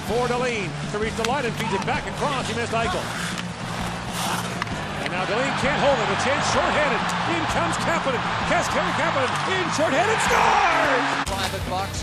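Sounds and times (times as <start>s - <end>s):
skates scraping ice: 0.7s - 7.0s
hockey sticks clicking puck: 1.1s - 5.8s, 9.1s - 9.6s
crowd noise: 1.5s - 11.7s.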